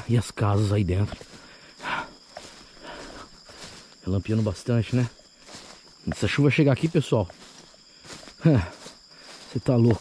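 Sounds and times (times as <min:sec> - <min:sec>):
crickets chirring: 0:00.0 - 0:10.0
soft rustles: 0:00.0 - 0:10.0.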